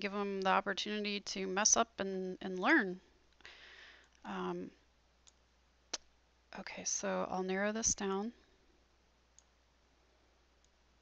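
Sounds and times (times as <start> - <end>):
computer mouse clicks: 9.3 - 9.6.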